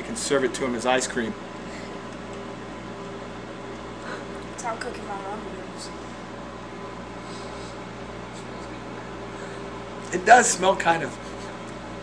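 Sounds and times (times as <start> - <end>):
fan noise: 0.0 - 12.0
microwave oven humming: 0.0 - 12.0.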